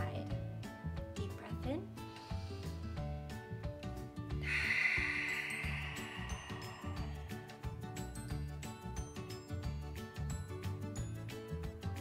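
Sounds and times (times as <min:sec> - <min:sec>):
person exhaling: 0:04.4 - 0:08.4.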